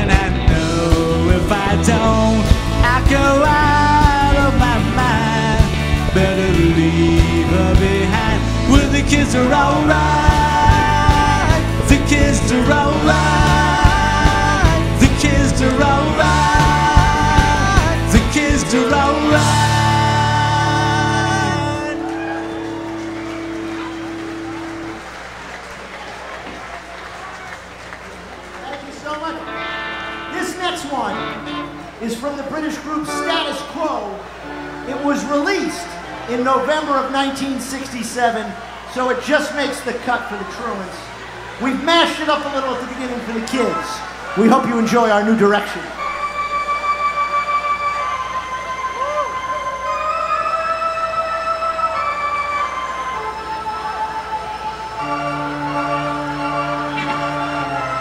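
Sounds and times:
rock band chord ringing: 0.0s - 25.6s, 28.9s - 37.7s, 52.4s - 58.0s
crowd applause: 3.4s - 58.0s.

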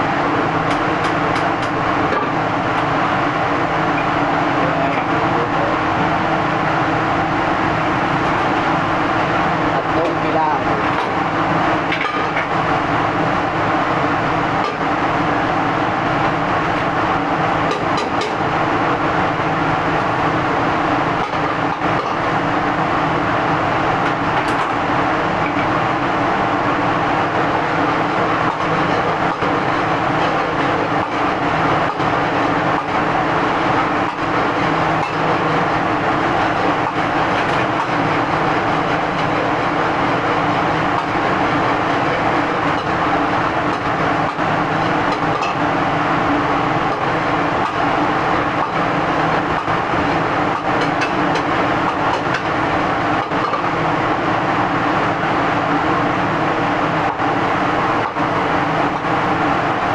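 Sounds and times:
gas burner and ventilation roar: 0.0s - 59.9s.

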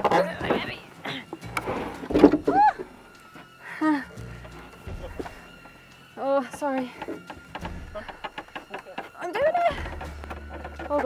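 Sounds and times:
people crying out with effort: 2.4s - 5.4s.

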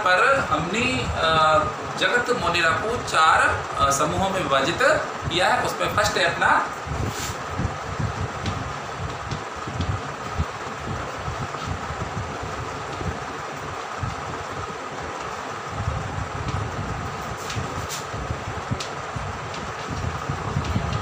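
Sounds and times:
mechanical hum and rumble: 0.0s - 21.0s.

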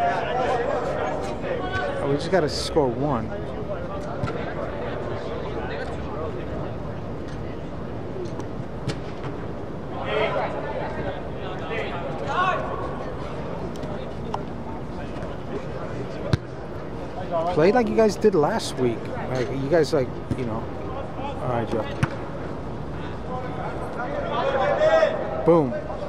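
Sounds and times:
players shouting: 9.9s - 13.4s, 23.4s - 26.0s.

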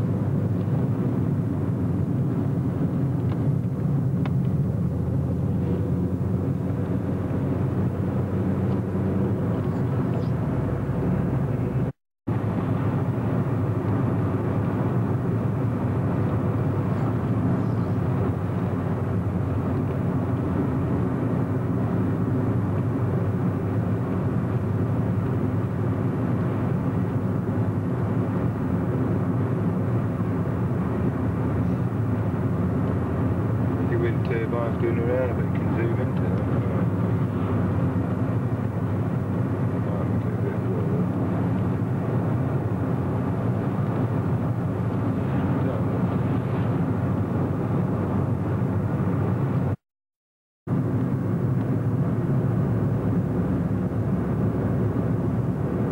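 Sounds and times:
car driving heard from inside: 0.0s - 49.8s, 50.7s - 55.9s.

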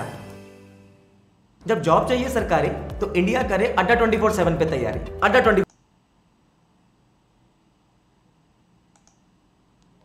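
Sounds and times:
faint clicks: 8.9s - 9.2s.

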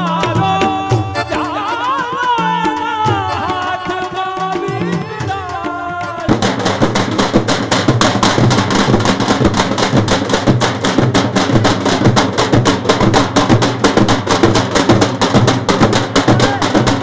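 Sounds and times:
side drum: 0.0s - 17.0s
street drummers drumming: 0.0s - 17.0s
bass drum: 6.0s - 17.0s.

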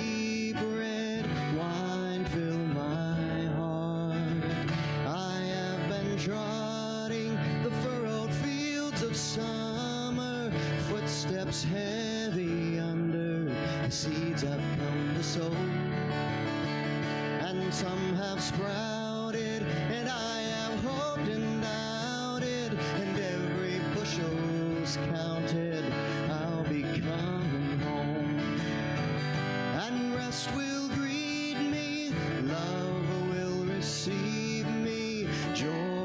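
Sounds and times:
acoustic guitar strumming: 0.0s - 36.0s
man singing into a microphone: 0.0s - 36.0s.

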